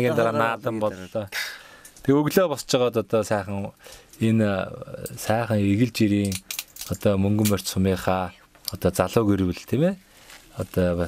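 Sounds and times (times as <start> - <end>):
man speaking: 0.0 - 10.0, 10.6 - 11.0.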